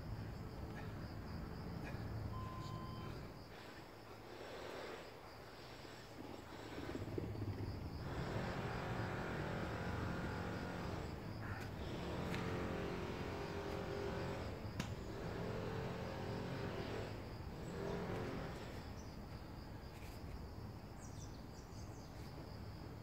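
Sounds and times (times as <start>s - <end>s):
insects chirping: 0.0s - 23.0s
engine hum: 4.3s - 20.1s.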